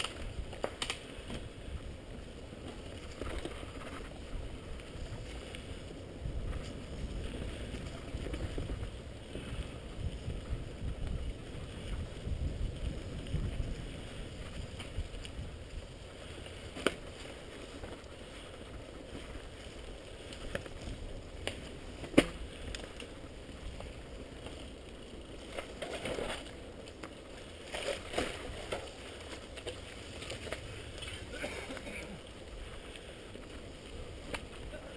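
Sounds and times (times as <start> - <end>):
bike tyres rumbling on dirt: 0.0 - 34.9
wind on microphone: 3.0 - 16.4.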